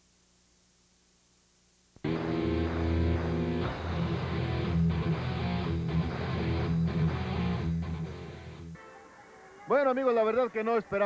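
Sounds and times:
theme music with guitar: 0:02.0 - 0:11.0.

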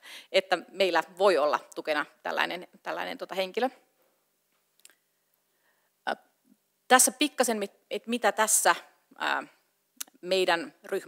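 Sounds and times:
woman speaking: 0:00.3 - 0:03.8, 0:06.9 - 0:11.0.

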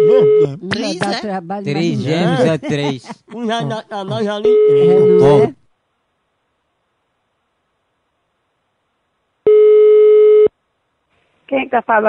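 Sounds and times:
telephone ringback tone: 0:04.5 - 0:05.5, 0:09.5 - 0:10.5.

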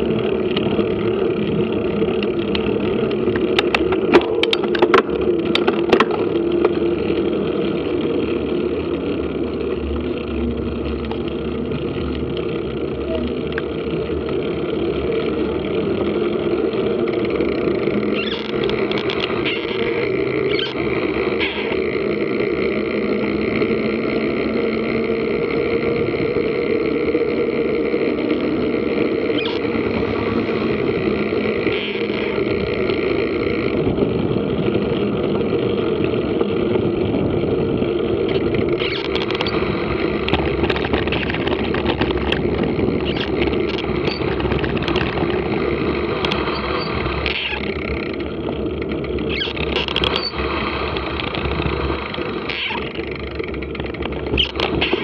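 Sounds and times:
wind noise on microphone: 0:25.4 - 0:55.0.

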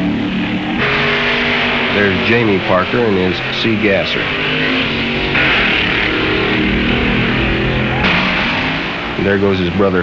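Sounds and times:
background music: 0:00.0 - 0:10.0
harsh noisy layer: 0:00.0 - 0:10.0.

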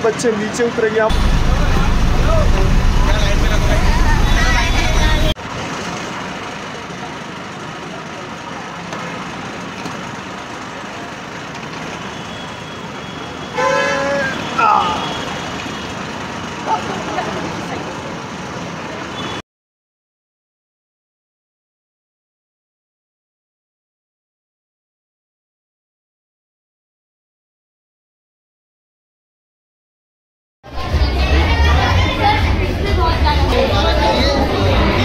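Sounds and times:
low traffic rumble: 0:00.0 - 0:19.4, 0:30.7 - 0:35.0
traffic hum: 0:00.0 - 0:19.4
vehicle horn toot: 0:12.1 - 0:15.9, 0:19.1 - 0:19.4.

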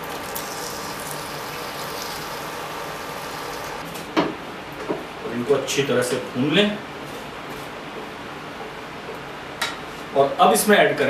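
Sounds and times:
masala sizzling in a frying pan: 0:00.0 - 0:03.8.

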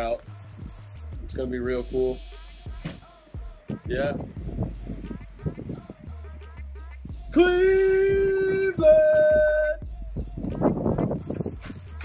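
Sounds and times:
background music with steady beat: 0:00.0 - 0:12.0
man's long high yell: 0:07.3 - 0:09.8.

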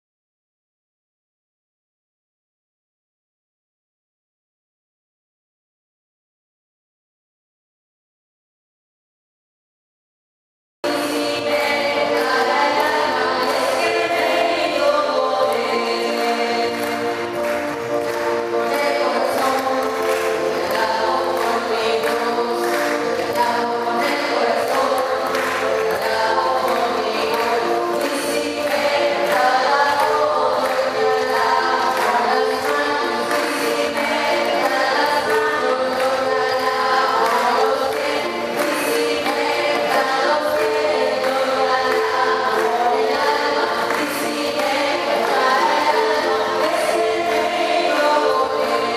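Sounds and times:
instrumental accompaniment: 0:10.8 - 0:48.9
congregation singing a hymn: 0:10.9 - 0:48.9.

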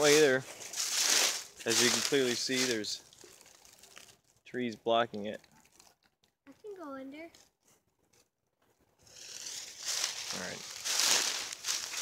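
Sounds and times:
footsteps crunching through dry leaves: 0:00.0 - 0:04.1, 0:09.1 - 0:12.0.

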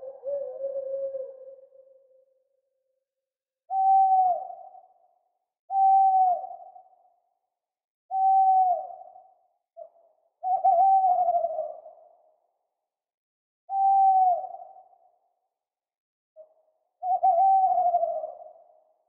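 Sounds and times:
owl hooting with echo: 0:00.0 - 0:02.4, 0:03.7 - 0:07.2, 0:08.1 - 0:12.4, 0:13.7 - 0:15.3, 0:16.4 - 0:19.0.

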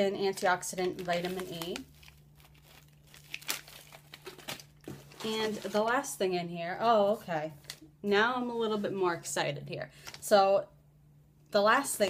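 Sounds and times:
snack pouch crinkling: 0:00.9 - 0:05.2.

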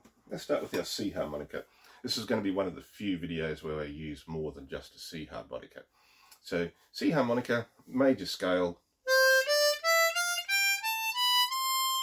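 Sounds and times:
harmonica playing a scale: 0:09.1 - 0:12.0.

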